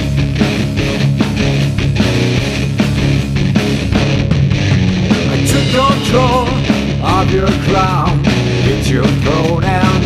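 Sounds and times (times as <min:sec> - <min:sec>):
heavy rock band: 0:00.0 - 0:10.0.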